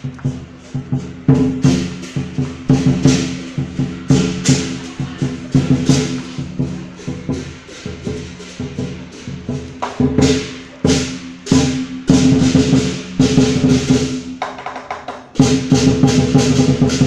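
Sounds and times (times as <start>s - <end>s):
drum strikes: 0.0s - 17.0s
cymbal clashes: 0.1s - 14.4s.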